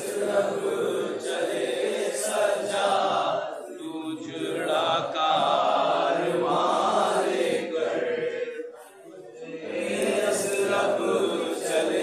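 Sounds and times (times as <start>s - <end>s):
men chanting a mourning lament: 0.0s - 12.0s.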